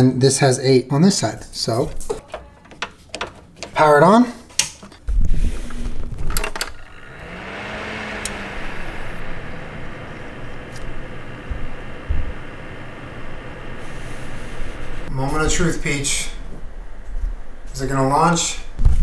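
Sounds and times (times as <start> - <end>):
computer fans whirring: 5.5 - 19.0.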